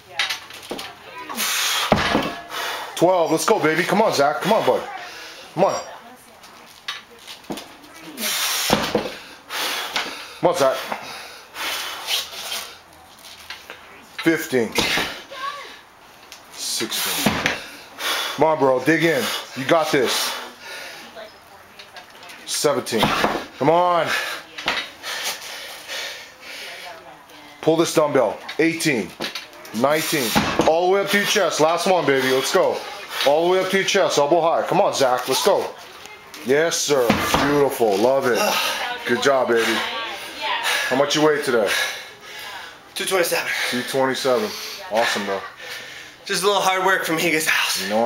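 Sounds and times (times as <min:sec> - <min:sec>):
strained breathing: 0:01.3 - 0:03.0, 0:05.0 - 0:05.5, 0:08.2 - 0:12.9, 0:16.9 - 0:18.4, 0:19.1 - 0:21.2, 0:24.0 - 0:27.1, 0:38.3 - 0:46.3
hissing exhale: 0:01.4 - 0:03.0, 0:08.2 - 0:08.8
man's forceful hissing breaths: 0:01.4 - 0:03.0, 0:08.2 - 0:12.8, 0:16.9 - 0:18.4.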